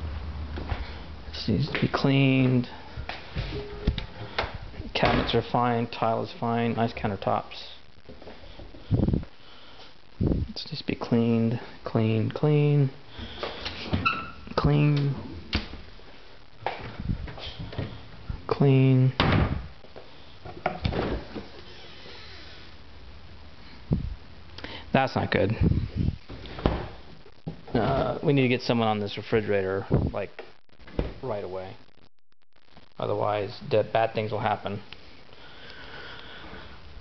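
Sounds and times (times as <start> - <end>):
breathing hiss close to microphone: 8.2 - 10.6, 13.0 - 14.0, 23.6 - 26.3, 35.0 - 37.0.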